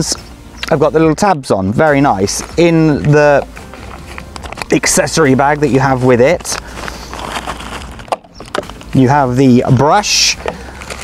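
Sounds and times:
bag rustling and handling: 0:02.0 - 0:11.0.

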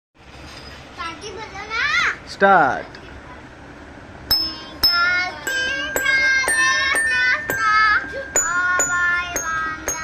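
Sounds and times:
child speaking: 0:01.0 - 0:02.3, 0:02.9 - 0:03.5.

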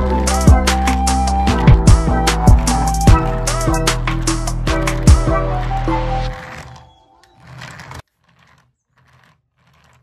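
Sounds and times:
toy car motor whirring: 0:00.2 - 0:10.0.

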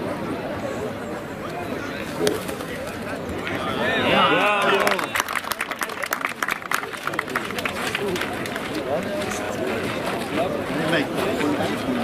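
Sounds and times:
people chattering outdoors: 0:00.0 - 0:12.0.

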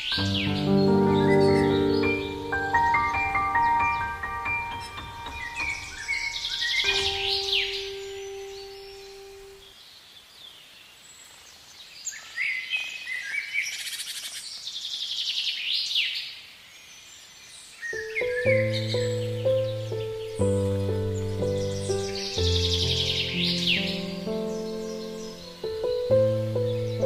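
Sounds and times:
piano music: 0:00.0 - 0:09.6, 0:18.0 - 0:27.0
songbirds chirping and trilling: 0:00.0 - 0:27.0.

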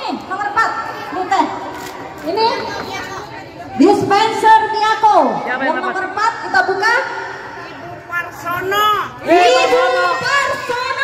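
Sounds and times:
excited voices chattering: 0:05.4 - 0:11.0.

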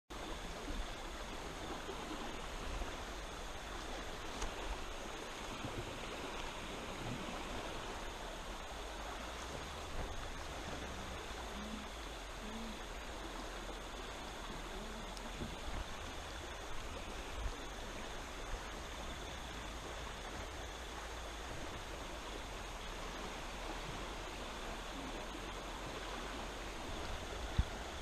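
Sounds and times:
river water flowing: 0:00.1 - 0:28.0.

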